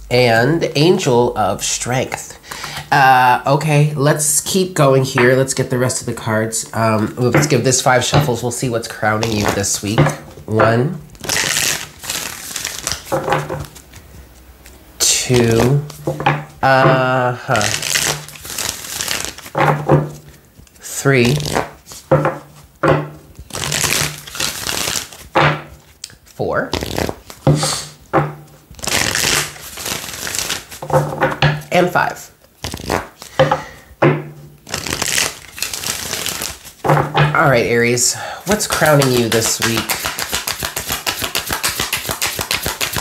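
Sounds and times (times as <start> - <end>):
cards rustling: 4.2 - 10.4, 11.1 - 22.6, 23.4 - 28.0, 28.7 - 33.7, 34.6 - 36.8, 37.4 - 43.0
cards rattling while shuffled: 6.7 - 10.0, 11.2 - 13.9, 14.6 - 19.6, 23.4 - 27.9, 28.8 - 31.1, 34.7 - 36.8, 38.5 - 43.0.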